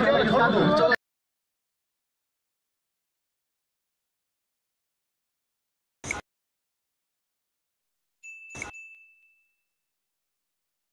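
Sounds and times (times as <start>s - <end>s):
notification bell ding: 8.2s - 9.7s.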